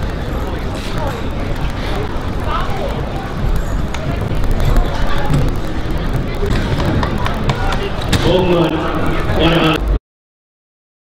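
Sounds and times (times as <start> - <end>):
distant voices: 0.0 - 10.0
low outdoor rumble: 0.0 - 10.0.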